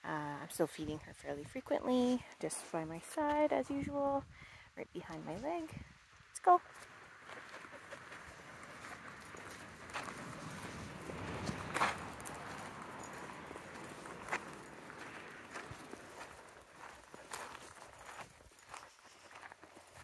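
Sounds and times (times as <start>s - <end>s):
footsteps on gravel: 6.5s - 20.0s.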